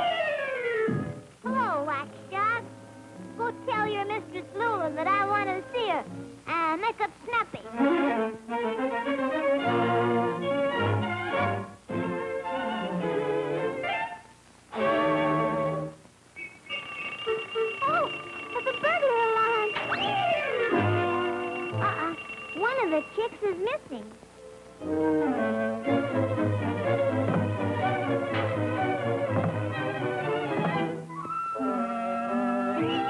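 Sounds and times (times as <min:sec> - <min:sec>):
lively orchestral cartoon music: 0:07.6 - 0:16.0, 0:16.7 - 0:23.3, 0:24.8 - 0:33.0.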